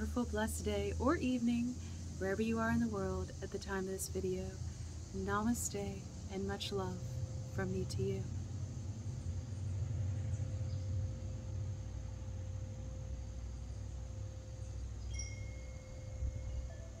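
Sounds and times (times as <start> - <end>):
steady low rumble: 0.0 - 17.0
metal wind chimes ringing: 14.5 - 17.0.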